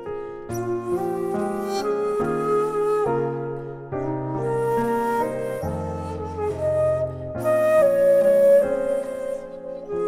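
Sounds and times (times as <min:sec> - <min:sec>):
bamboo flute melody: 0:00.0 - 0:10.0.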